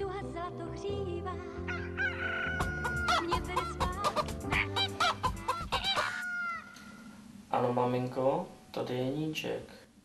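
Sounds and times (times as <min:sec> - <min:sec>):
background music: 0:00.0 - 0:07.1
chicken clucking and crowing: 0:01.7 - 0:07.1.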